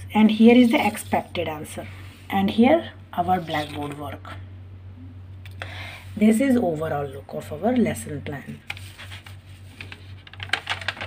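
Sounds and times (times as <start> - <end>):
paper rustling and crackling: 0.5 - 1.3, 8.6 - 11.0.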